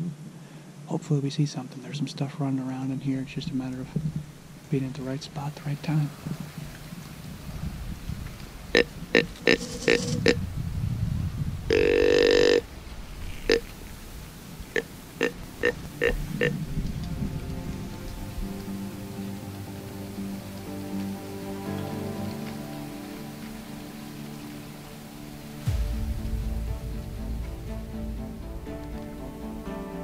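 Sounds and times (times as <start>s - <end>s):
deer grunt call: 8.7s - 10.4s, 11.7s - 12.6s, 14.7s - 16.6s
background music with held notes: 14.8s - 30.0s
deep bass: 25.7s - 30.0s.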